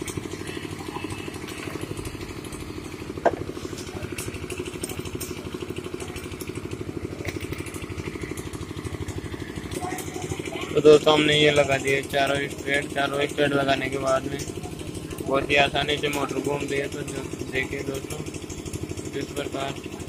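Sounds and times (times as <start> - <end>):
small engine idling: 0.0 - 20.0.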